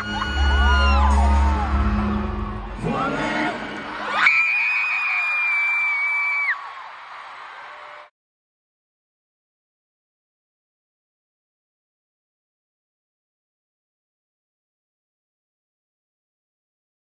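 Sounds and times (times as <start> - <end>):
crowd screaming and whooping: 0.0 - 8.1.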